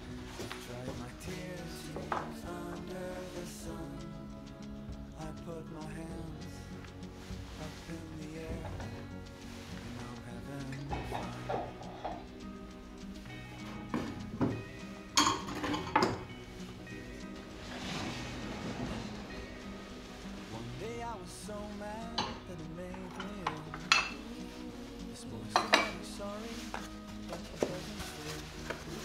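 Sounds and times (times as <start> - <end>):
soft background music: 0.0 - 29.0
ceramic plates clinking: 10.8 - 12.3, 13.7 - 16.3, 22.1 - 24.3, 25.4 - 27.8.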